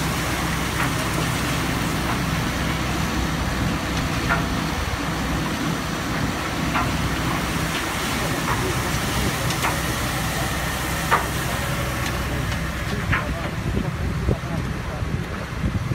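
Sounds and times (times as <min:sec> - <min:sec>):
engine drone: 0:00.0 - 0:15.9
water and gravel washing: 0:00.0 - 0:15.9.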